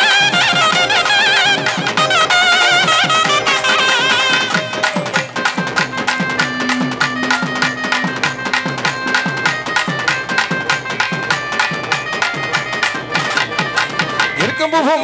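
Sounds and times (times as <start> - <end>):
clarinet melody: 0.0 - 13.8
drum strokes dropping in pitch: 0.0 - 14.6.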